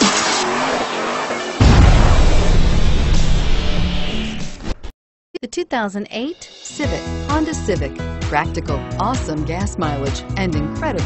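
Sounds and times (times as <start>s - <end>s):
car tyres squealing: 0.0s - 1.6s
heavy low boom: 1.6s - 4.7s.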